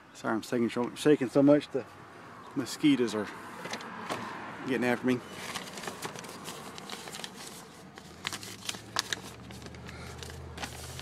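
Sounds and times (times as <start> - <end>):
paper rustling and crinkling: 5.3 - 11.0
sharp paper crackles: 5.3 - 11.0.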